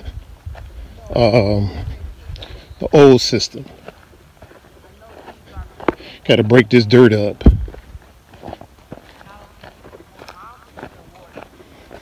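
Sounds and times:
footsteps on dry soil and grass: 0:00.0 - 0:12.0.

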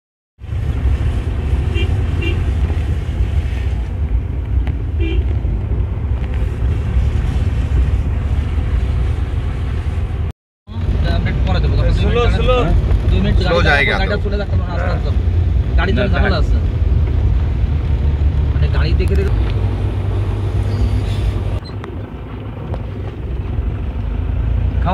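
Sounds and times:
vehicle on wet road: 0:00.4 - 0:24.9.

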